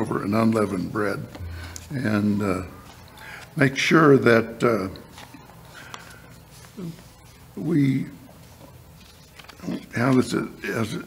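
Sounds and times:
man speaking: 0.0s - 5.2s, 7.5s - 8.4s, 9.6s - 11.0s.

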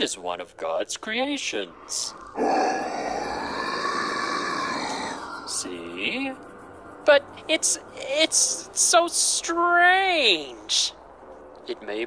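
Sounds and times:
harsh wailing creature cry: 2.0s - 6.0s.

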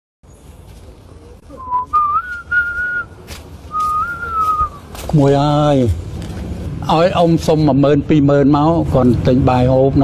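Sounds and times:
person whistling a tune: 1.6s - 3.1s, 3.7s - 4.8s.

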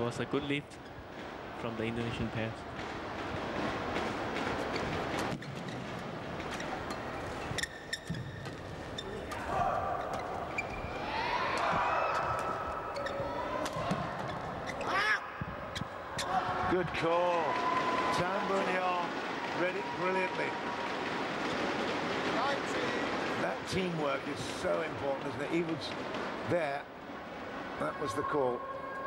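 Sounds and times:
spectators shouting and yelling: 9.2s - 23.2s.

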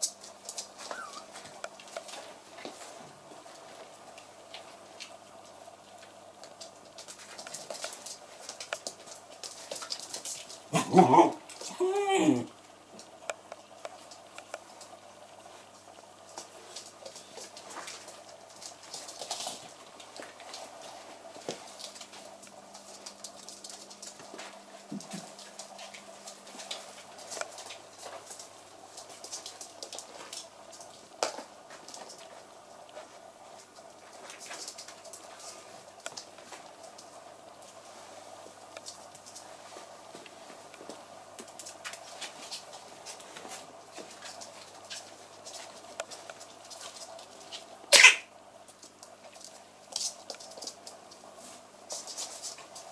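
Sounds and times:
puppy claws scratching floor: 0.0s - 11.9s, 13.0s - 52.9s
dog claws on wooden floor: 6.0s - 10.7s.

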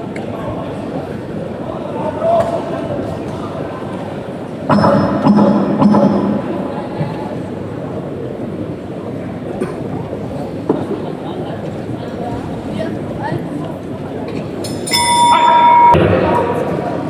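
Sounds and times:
boxing bell ringing: 14.8s - 16.6s.

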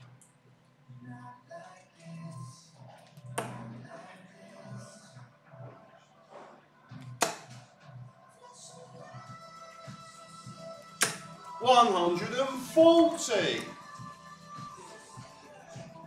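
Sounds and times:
darts thudding into dartboard: 3.4s - 3.7s, 7.1s - 7.7s, 11.0s - 11.3s.

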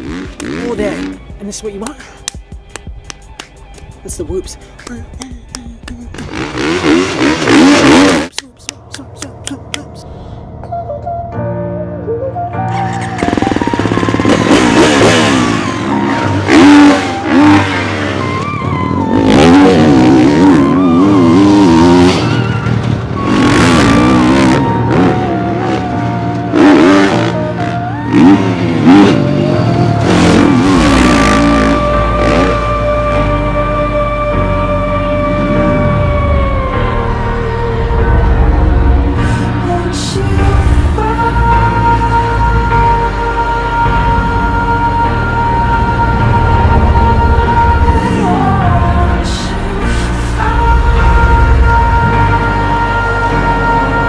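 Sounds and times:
motocross bike engine revving: 0.0s - 1.2s, 6.1s - 8.3s, 12.9s - 43.2s
music playing: 0.0s - 54.0s.

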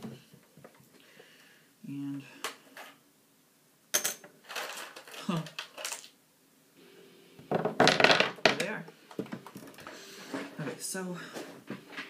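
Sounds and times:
batteries clattering on wooden table: 4.0s - 6.2s, 7.5s - 8.6s.

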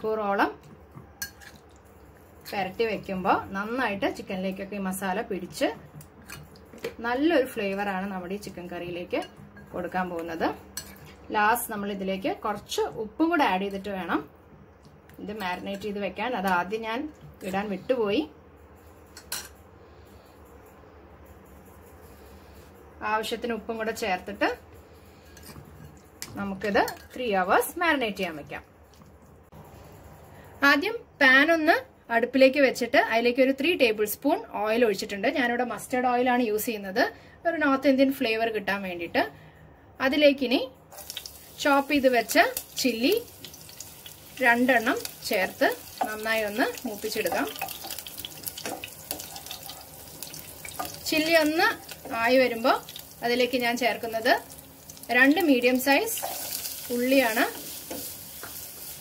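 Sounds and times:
faint steady hiss: 40.8s - 59.0s
chillies sizzling in oil: 40.9s - 59.0s.

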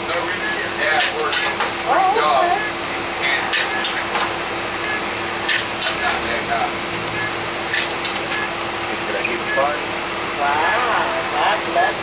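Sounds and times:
bus diesel engine drone: 0.0s - 12.0s
ventilation hum: 0.0s - 12.0s.

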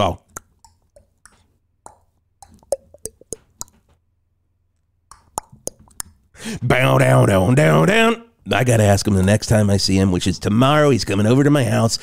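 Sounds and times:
man making lip pops and tongue clicks: 0.2s - 4.0s, 4.8s - 6.4s.

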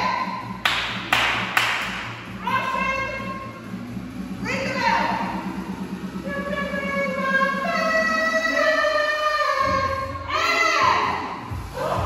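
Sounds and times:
sharp hand claps with echo: 0.6s - 2.2s.

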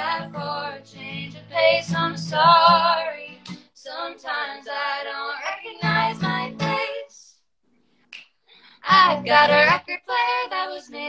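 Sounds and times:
acoustic guitar: 0.0s - 7.2s, 8.6s - 11.0s
women singing: 0.0s - 7.3s, 8.8s - 11.0s.

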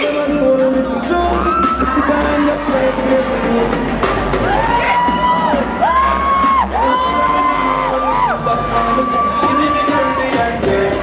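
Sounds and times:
dj mix over speakers: 0.0s - 11.0s
crowd whooping: 1.3s - 11.0s.

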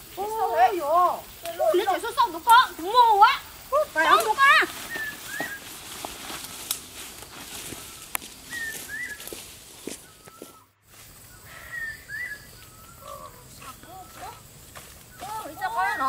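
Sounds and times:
footsteps through undergrowth: 1.1s - 16.0s
bird calling in paired whistles: 4.5s - 5.8s, 7.6s - 16.0s.

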